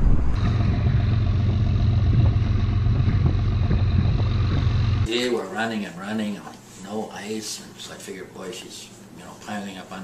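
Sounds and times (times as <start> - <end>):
boat engine drone: 0.0 - 5.1.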